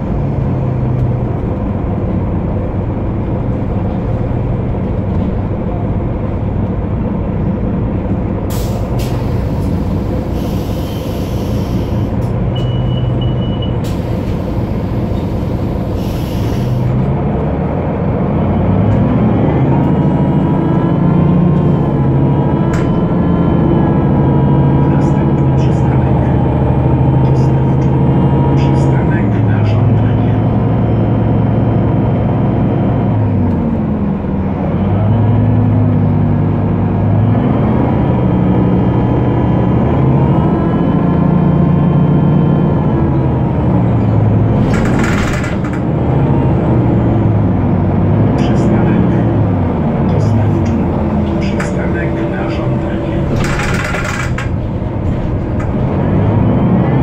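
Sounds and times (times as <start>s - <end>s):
bus diesel engine: 0.0s - 57.0s.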